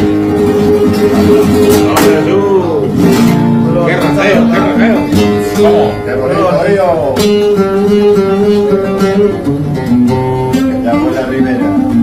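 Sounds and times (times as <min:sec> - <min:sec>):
flamenco guitar: 0:00.0 - 0:12.0.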